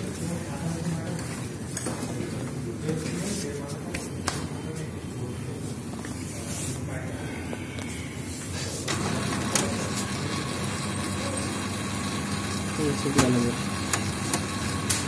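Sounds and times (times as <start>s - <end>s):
printer motor hum with whine: 7.8s - 15.0s
printer clicks: 13.1s - 15.0s.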